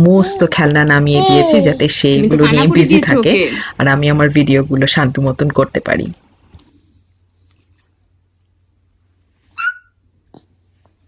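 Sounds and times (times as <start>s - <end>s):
toddler squealing: 9.6s - 10.0s.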